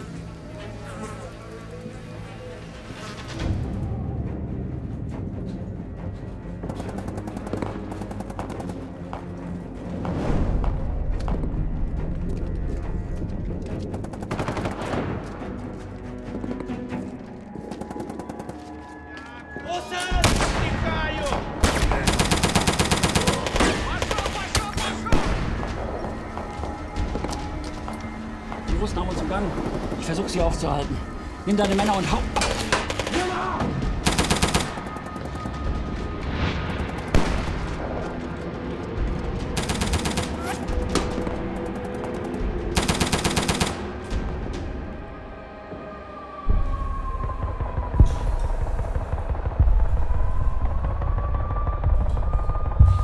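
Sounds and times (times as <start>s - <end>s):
gunshots: 20.2s - 25.9s
machine-gun burst: 21.6s - 24.5s.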